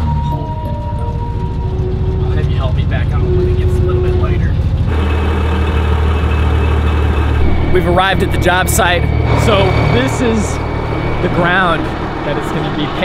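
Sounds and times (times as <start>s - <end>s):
music: 0.0s - 4.9s, 6.0s - 13.0s
truck engine running: 0.0s - 13.0s.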